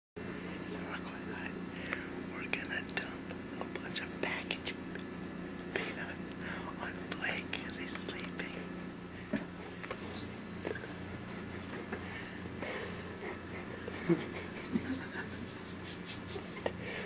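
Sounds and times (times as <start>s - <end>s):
steady low hum: 0.2s - 17.0s
person whispering: 0.6s - 1.6s, 2.3s - 4.8s, 5.7s - 8.7s.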